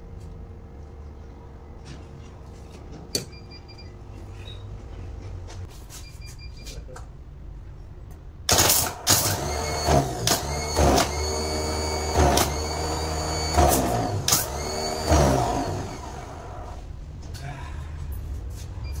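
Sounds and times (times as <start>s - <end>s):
starter motor whining: 8.5s - 16.8s.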